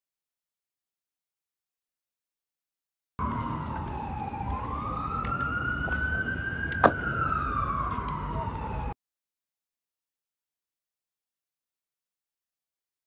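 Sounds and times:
emergency siren wailing: 3.2 - 9.0.

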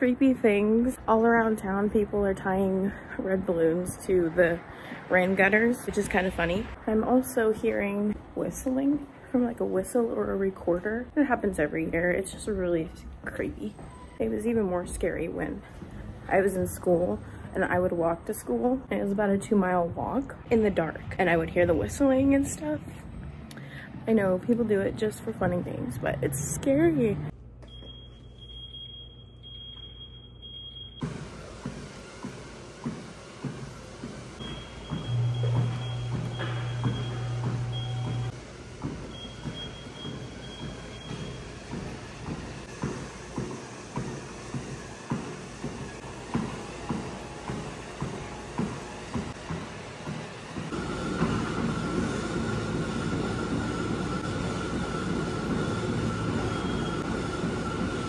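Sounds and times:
treadmill belt and motor running: 7.4 - 58.0
treadmill motor whine: 19.4 - 58.0
footfalls on treadmill: 31.0 - 58.0.

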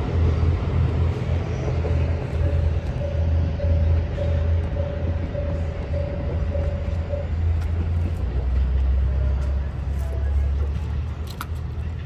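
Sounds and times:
diesel train engine rumble: 0.0 - 12.0
level-crossing bell: 1.8 - 10.5.

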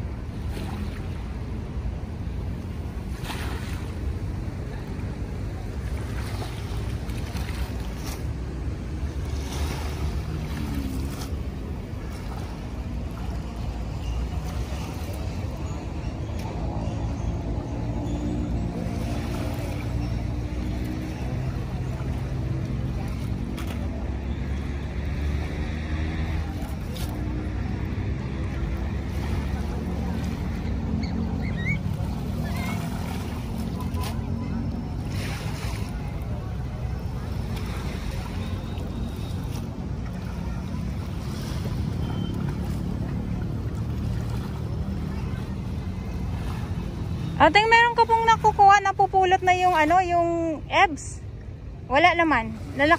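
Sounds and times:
faint engine hum: 0.0 - 52.9
wind and water rumble: 0.0 - 52.9.

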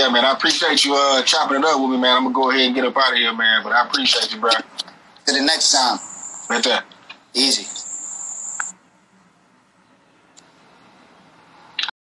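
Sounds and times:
steady high-pitched tone: 5.6 - 6.8, 7.4 - 9.3.

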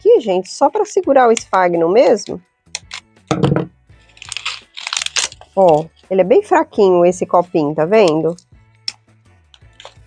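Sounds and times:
scissors snipping plastic: 2.8 - 3.0, 4.2 - 5.9
plastic cup crunching and crinkling: 4.1 - 6.0, 9.6 - 10.0.

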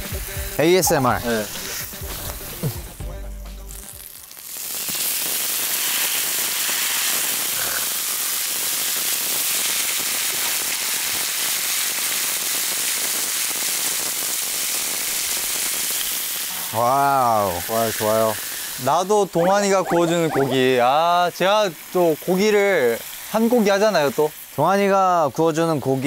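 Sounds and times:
meat sizzling on griddle: 0.0 - 19.3, 20.6 - 26.0.

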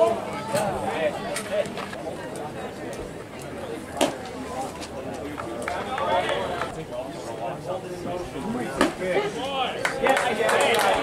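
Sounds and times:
spectators talking: 0.0 - 11.0.

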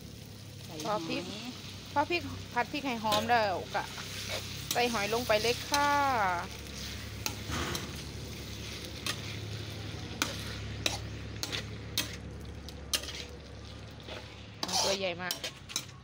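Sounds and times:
snails sizzling in hot oil: 0.0 - 16.0
metal spatula scraping wok: 0.7 - 16.0.

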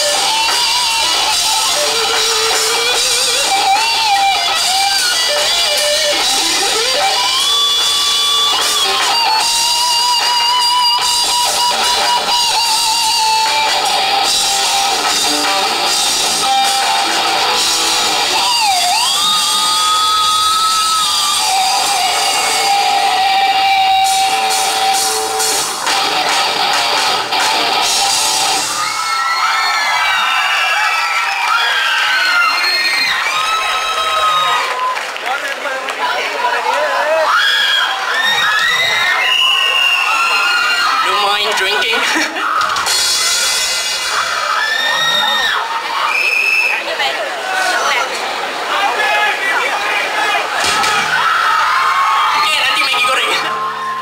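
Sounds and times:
electric guitar lead notes: 0.0 - 28.7
rock band playing: 0.0 - 31.0, 38.6 - 45.9, 50.5 - 54.0
crowd cheering and shouting: 0.0 - 54.0.

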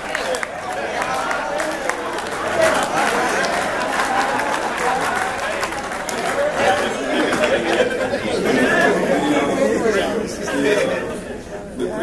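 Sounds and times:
laughter: 7.2 - 8.5.

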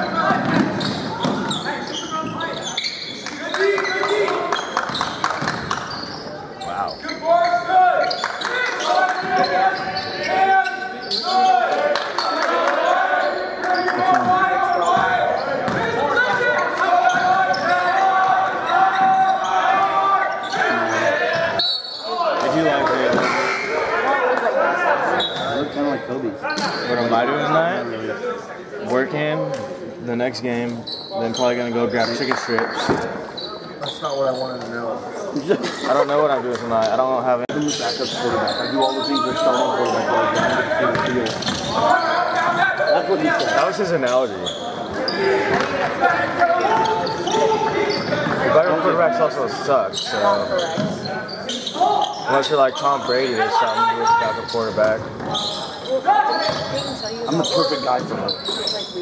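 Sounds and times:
shouts and chatter: 0.0 - 29.4, 37.7 - 59.0
basketball bouncing: 15.7 - 15.9.

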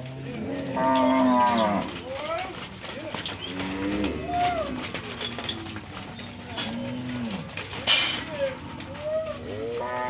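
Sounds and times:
steers mooing: 0.0 - 10.0.

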